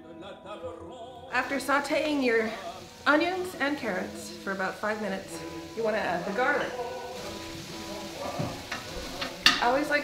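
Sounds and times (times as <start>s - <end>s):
background music with held notes: 0.0s - 10.0s
vegetables sizzling in a pot: 1.4s - 10.0s.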